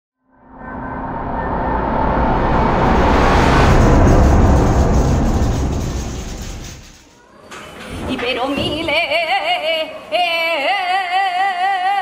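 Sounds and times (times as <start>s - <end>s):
noisy bass-heavy logo swell: 0.2s - 7.1s.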